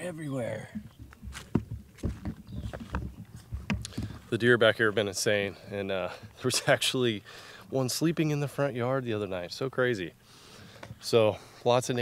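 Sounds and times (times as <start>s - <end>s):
camera handling bumps: 0.8s - 4.3s
footsteps on dry leaves: 1.0s - 4.4s.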